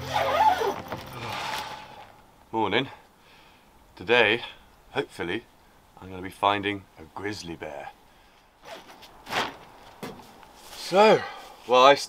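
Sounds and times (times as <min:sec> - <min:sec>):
fabric rustling: 0:00.0 - 0:02.1.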